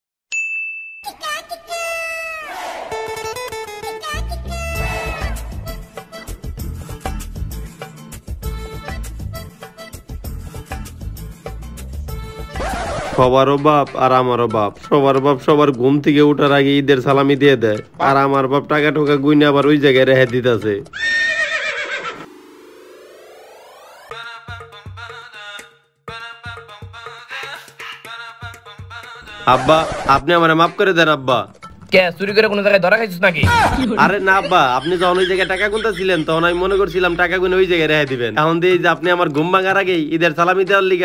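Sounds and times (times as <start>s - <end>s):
horse whinny sound effect: 4.6s - 5.8s, 12.6s - 13.2s, 20.9s - 22.7s
man speaking: 29.4s - 41.0s.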